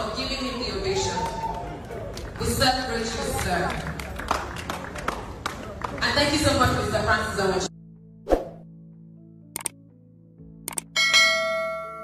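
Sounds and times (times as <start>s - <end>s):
quick double clicks: 9.6s - 9.8s, 10.7s - 10.9s
bell ding: 11.0s - 12.0s.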